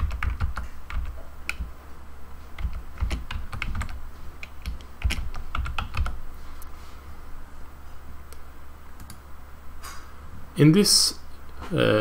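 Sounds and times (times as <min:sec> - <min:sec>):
typing on a computer keyboard: 0:00.0 - 0:01.7, 0:02.6 - 0:06.2.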